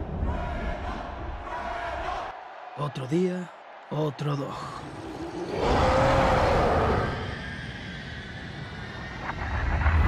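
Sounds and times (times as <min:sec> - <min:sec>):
low rumble: 0:05.1 - 0:10.0.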